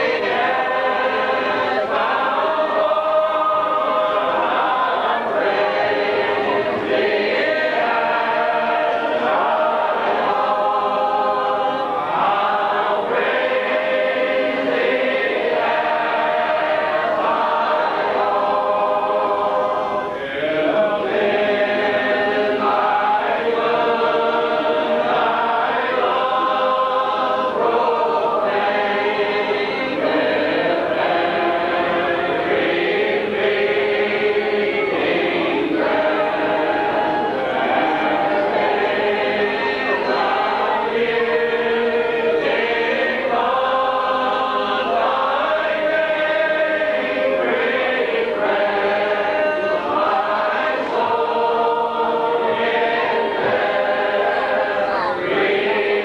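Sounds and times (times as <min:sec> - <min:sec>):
congregation singing a hymn: 0:00.0 - 0:56.0.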